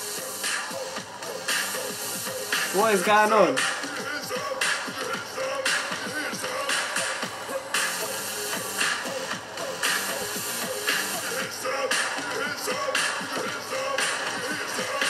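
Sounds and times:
live pop concert music: 0:00.0 - 0:15.0.

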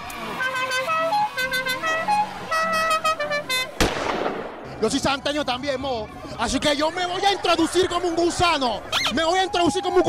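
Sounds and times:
horn playing a quick tune: 0:00.2 - 0:03.8.

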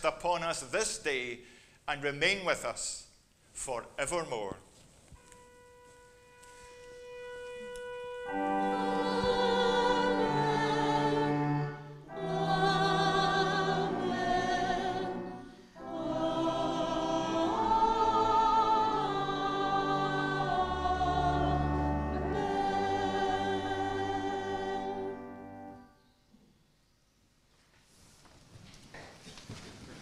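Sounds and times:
pipe organ: 0:05.2 - 0:26.2
choir singing: 0:08.1 - 0:25.9.

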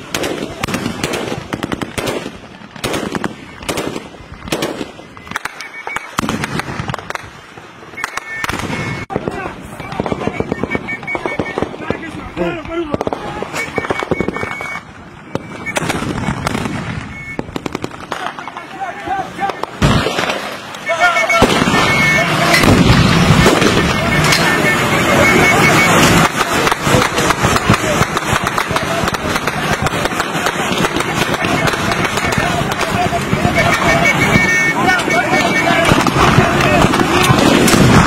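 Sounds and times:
automatic gunfire: 0:00.0 - 0:07.3, 0:21.4 - 0:38.0
men shouting: 0:18.2 - 0:19.8, 0:23.3 - 0:38.0.

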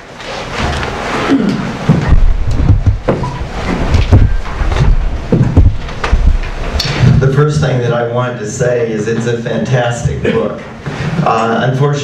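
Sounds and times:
microphone handling rumble: 0:01.8 - 0:07.9
dull knocks and thuds: 0:01.9 - 0:07.2.

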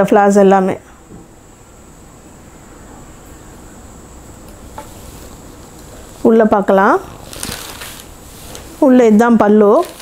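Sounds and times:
high-pitched whine: 0:01.3 - 0:08.9.

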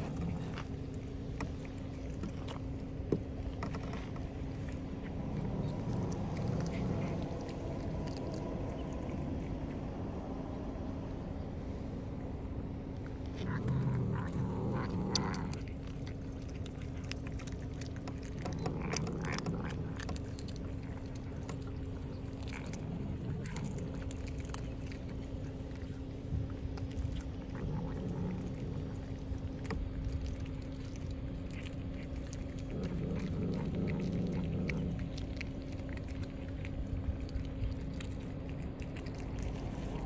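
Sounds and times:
cat chewing crunches: 0:00.0 - 0:40.0
cat rumbling while eating: 0:00.0 - 0:40.0.

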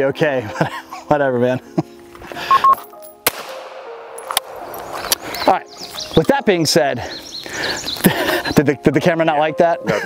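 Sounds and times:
pistol gunshots: 0:03.2 - 0:04.9.

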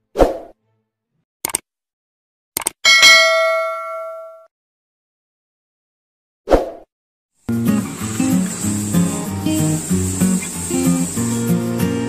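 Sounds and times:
quick double clicks: 0:01.4 - 0:01.6, 0:02.6 - 0:02.8
bell ding: 0:02.9 - 0:04.5.

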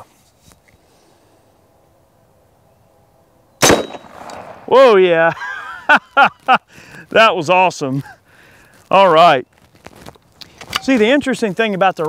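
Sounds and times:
air rifle shot: 0:03.6 - 0:04.7.

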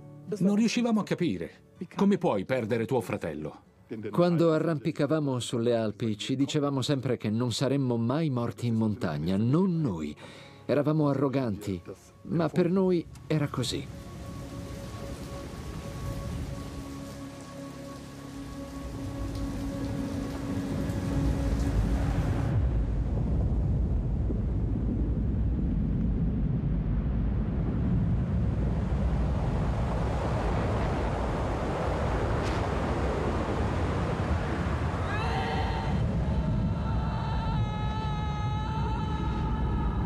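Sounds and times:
heavy rain hissing: 0:13.1 - 0:23.3, 0:27.5 - 0:39.8
avalanche rumbling roar: 0:19.9 - 0:40.0.

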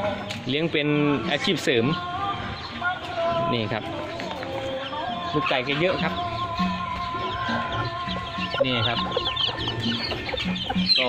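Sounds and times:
chicks peeping: 0:00.0 - 0:11.0
hen clucking: 0:01.0 - 0:11.0.

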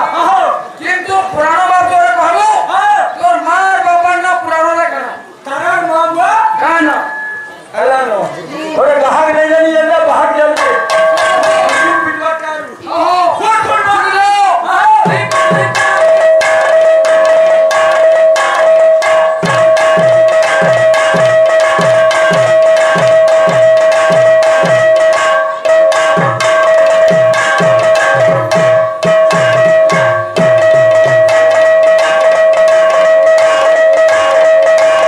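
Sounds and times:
steady held note: 0:10.5 - 0:12.8
drum: 0:10.6 - 0:12.2, 0:15.0 - 0:35.0
metallic strikes: 0:10.6 - 0:12.4.

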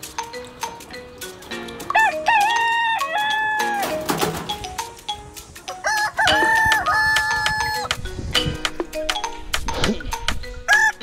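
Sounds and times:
rooster crowing: 0:02.0 - 0:03.9, 0:05.8 - 0:07.9.

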